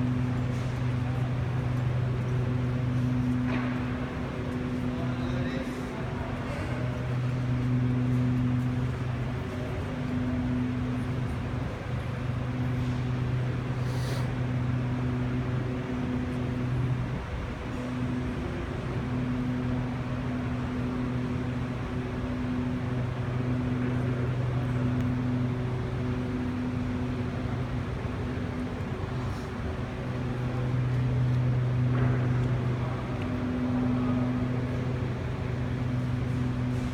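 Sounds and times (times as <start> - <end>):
low hum with overtones: 0.0 - 36.9.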